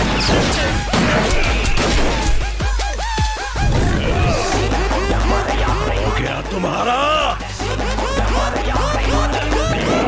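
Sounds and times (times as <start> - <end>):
action film score: 0.0 - 10.0
crash sound effects: 3.6 - 4.6.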